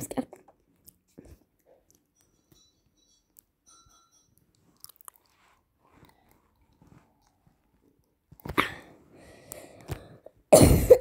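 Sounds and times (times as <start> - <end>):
girl coughing: 10.5 - 11.0.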